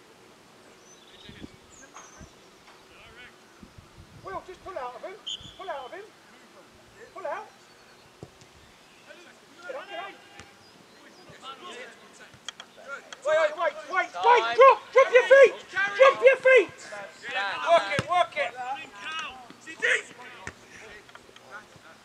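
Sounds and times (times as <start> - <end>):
distant shouts of footballers: 9.0 - 12.2, 12.8 - 20.9.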